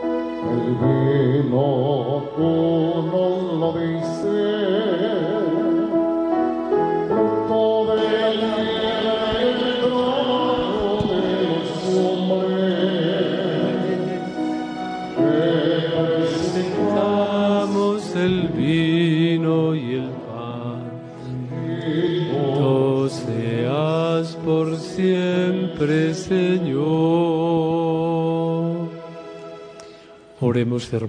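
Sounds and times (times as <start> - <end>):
held keyboard chords: 0.0 - 30.4
person singing with vibrato: 0.0 - 31.0.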